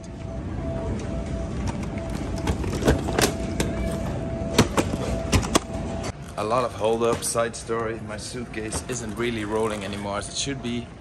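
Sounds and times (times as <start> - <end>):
baggage carousel rumbling: 0.0 - 11.0.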